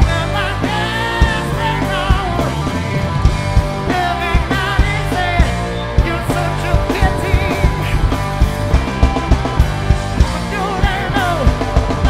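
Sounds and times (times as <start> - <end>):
drum strikes: 0.0 - 12.0
rock band playing live: 0.0 - 12.0
singer holding long notes: 0.0 - 12.0.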